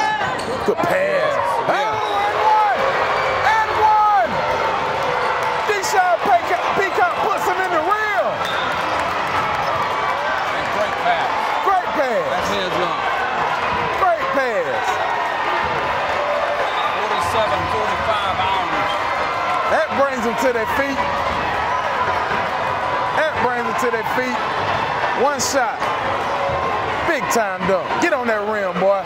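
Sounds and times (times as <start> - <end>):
crowd shouting and cheering: 0.0 - 29.0
sneakers squeaking: 0.2 - 0.8, 8.3 - 10.0, 16.5 - 19.2
basketball bouncing: 8.3 - 10.0.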